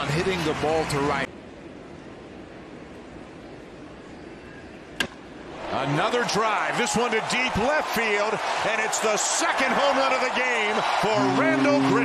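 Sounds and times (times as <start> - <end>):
stadium crowd murmur: 5.6 - 12.0.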